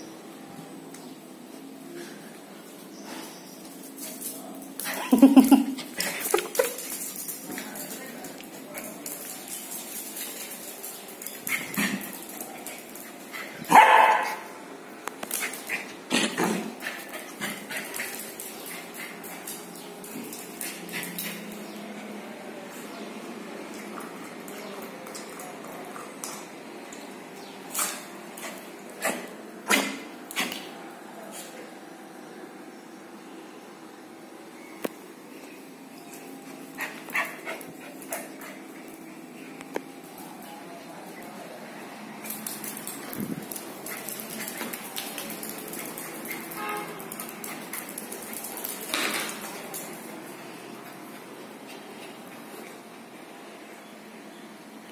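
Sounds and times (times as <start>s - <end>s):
puppy playing sounds: 1.4s - 32.0s, 35.1s - 53.3s
puppy barking: 13.7s - 14.5s.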